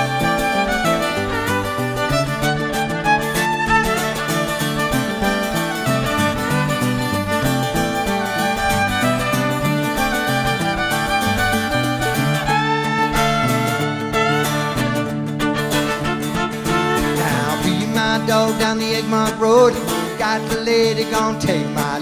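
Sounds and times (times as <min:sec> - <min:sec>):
fiddle playing: 0:00.0 - 0:20.6
strummed string accompaniment: 0:00.0 - 0:22.0.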